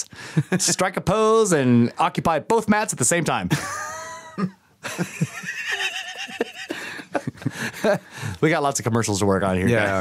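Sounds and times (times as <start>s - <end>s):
man's high-pitched laugh: 3.5s - 7.5s.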